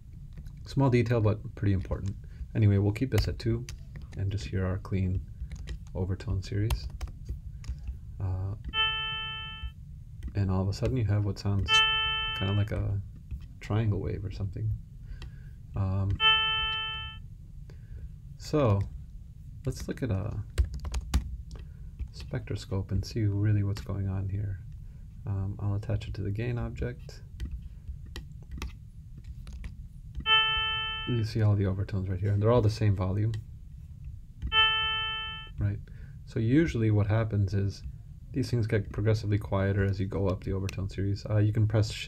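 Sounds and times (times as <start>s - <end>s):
synthesized sine tone: 8.7s - 9.8s, 11.7s - 12.7s, 16.2s - 17.2s, 30.2s - 31.4s, 34.5s - 35.6s.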